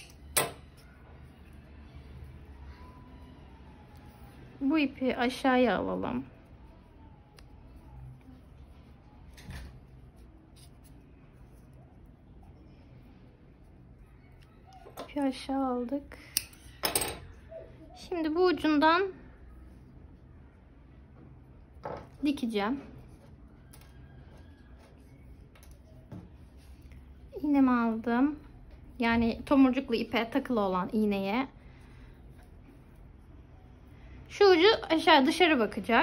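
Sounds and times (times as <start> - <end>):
scissors snipping yarn: 7.3 - 7.8, 16.2 - 16.7
scissors metallic click: 16.3 - 16.6.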